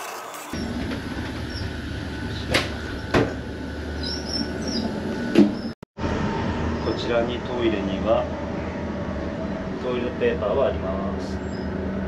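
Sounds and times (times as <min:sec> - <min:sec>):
train rumble: 0:00.6 - 0:12.0.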